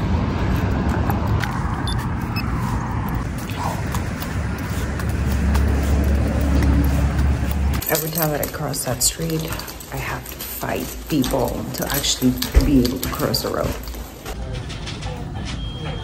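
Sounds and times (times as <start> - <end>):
cars going by: 0.0 - 13.8.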